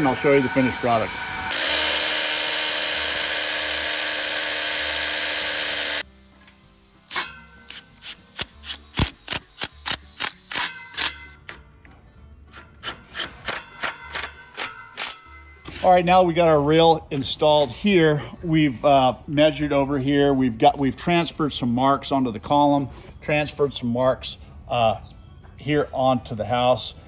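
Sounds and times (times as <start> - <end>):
rotary hammer drilling into concrete: 0.0 - 6.0, 7.1 - 11.4.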